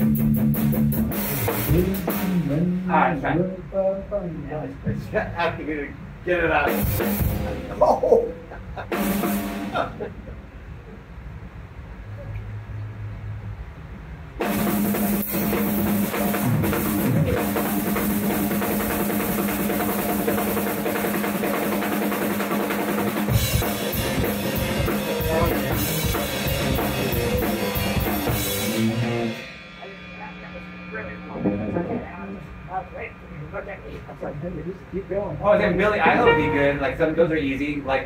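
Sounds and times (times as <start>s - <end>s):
drum kit: 0.0s - 3.0s, 6.1s - 10.3s, 14.3s - 32.8s, 36.1s - 36.8s
amplified electric guitars: 15.3s - 32.8s, 36.2s - 36.8s.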